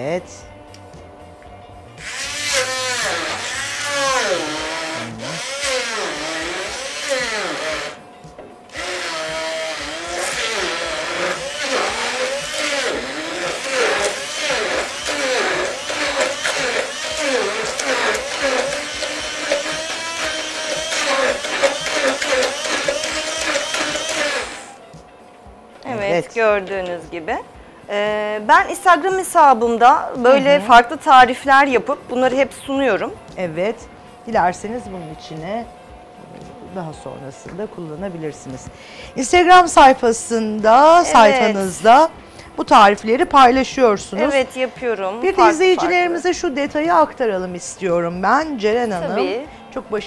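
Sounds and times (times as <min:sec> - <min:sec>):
stick blender running: 0:02.0 - 0:08.0, 0:08.7 - 0:24.8.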